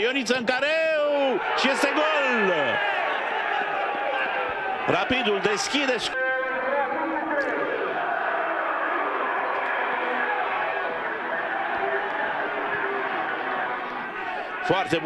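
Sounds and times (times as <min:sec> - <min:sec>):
stadium crowd cheering and chanting: 0:00.7 - 0:15.0.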